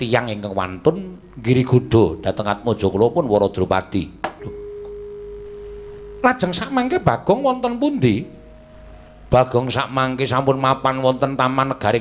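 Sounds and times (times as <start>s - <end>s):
pure steady tone: 0.0s - 12.0s.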